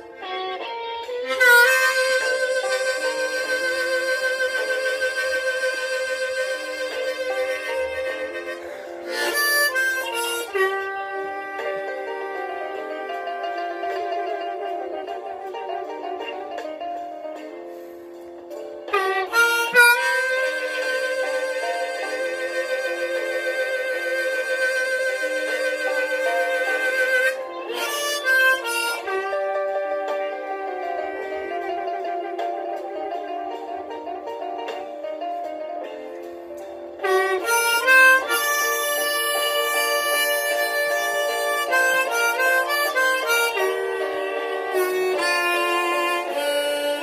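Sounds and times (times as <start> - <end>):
harmonica playing bluesy melody: 0.0 - 47.0.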